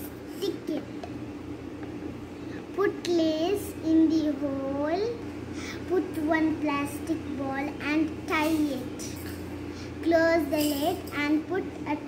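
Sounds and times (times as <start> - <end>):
child's voice: 0.0 - 1.0, 2.7 - 9.2, 9.9 - 12.0
low background hum and hiss: 0.0 - 12.0.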